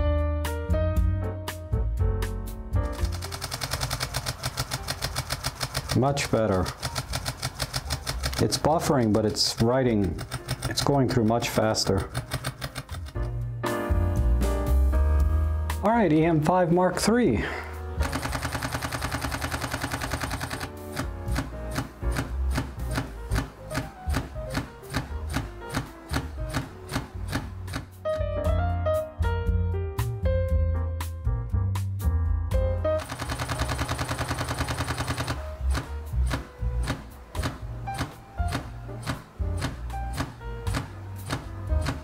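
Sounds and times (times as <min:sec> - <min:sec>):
background music: 0:00.0 - 0:42.0
camera shutter burst: 0:02.9 - 0:08.5, 0:18.0 - 0:28.0, 0:33.0 - 0:42.0.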